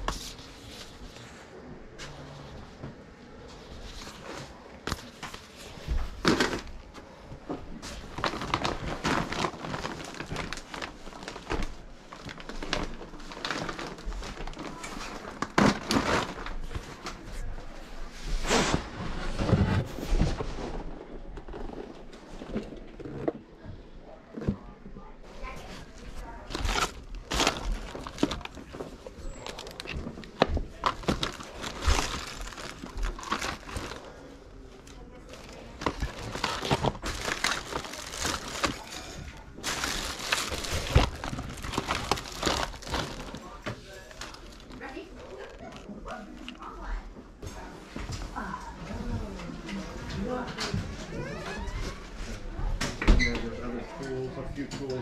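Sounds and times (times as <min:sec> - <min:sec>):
household items rummaged through: 0:02.0 - 0:23.4, 0:25.3 - 0:46.7.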